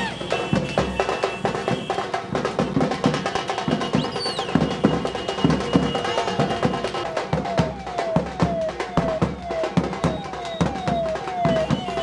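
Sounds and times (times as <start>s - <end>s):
procession drums beating: 0.0s - 12.0s.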